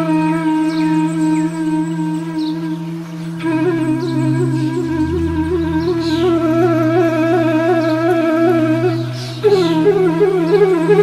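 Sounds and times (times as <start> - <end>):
flute long note with vibrato: 0.0 - 11.0
low drone notes: 3.4 - 10.1.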